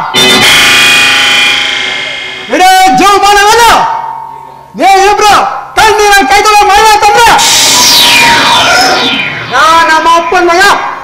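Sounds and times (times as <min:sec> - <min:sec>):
dramatic musical sting chord: 0:00.1 - 0:03.1.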